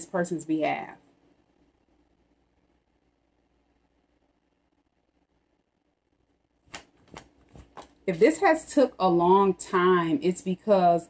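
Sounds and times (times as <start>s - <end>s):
cards riffling: 6.6s - 8.0s.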